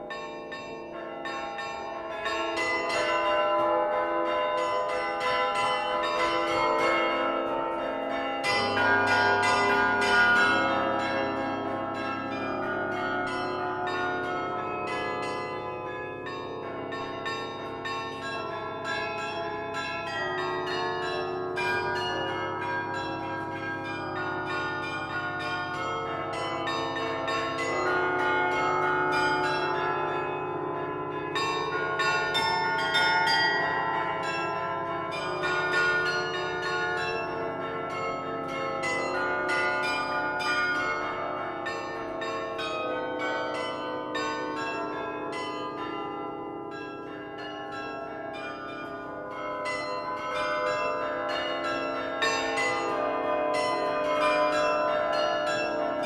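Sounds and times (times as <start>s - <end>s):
carillon bells ringing: 0.0s - 56.0s.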